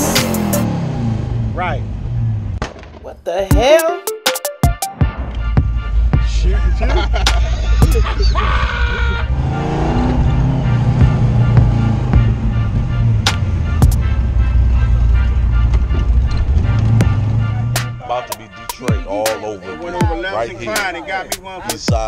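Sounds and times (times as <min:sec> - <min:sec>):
hip-hop music: 0:00.0 - 0:00.7, 0:03.4 - 0:22.0
car engine from inside cabin: 0:08.2 - 0:18.0.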